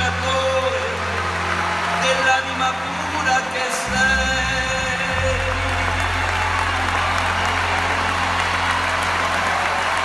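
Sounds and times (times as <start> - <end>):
live band holding low chord: 0.0 - 10.0.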